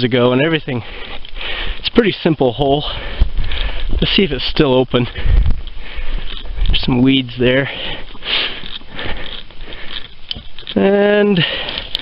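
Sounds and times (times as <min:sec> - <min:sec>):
footsteps crunching through dry grass: 0:00.0 - 0:12.0.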